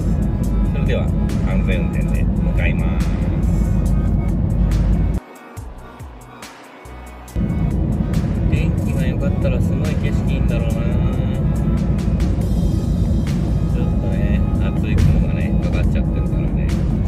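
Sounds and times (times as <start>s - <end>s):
car road and engine rumble: 0.0s - 5.2s, 7.2s - 17.0s.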